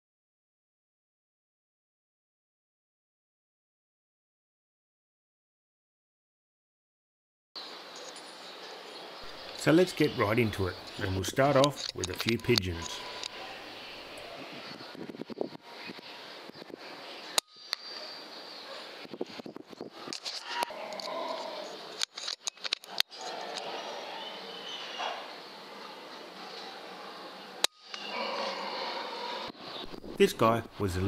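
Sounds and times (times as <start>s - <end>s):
faint outdoor background: 7.6s - 31.0s.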